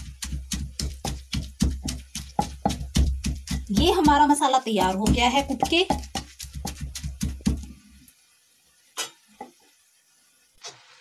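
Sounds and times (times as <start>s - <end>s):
pestle pounding in stone mortar: 0.0s - 7.8s.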